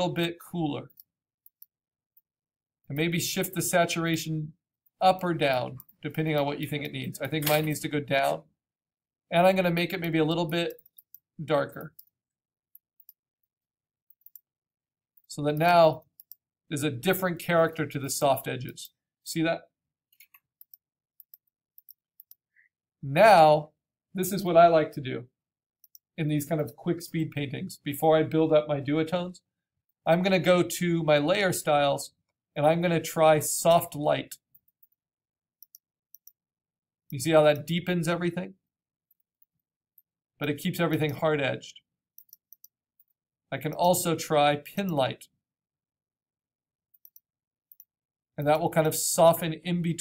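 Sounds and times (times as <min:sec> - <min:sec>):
computer mouse clicks: 0:00.9 - 0:02.3, 0:10.0 - 0:14.5, 0:20.1 - 0:22.4, 0:35.6 - 0:36.4, 0:42.2 - 0:44.0, 0:46.9 - 0:47.9.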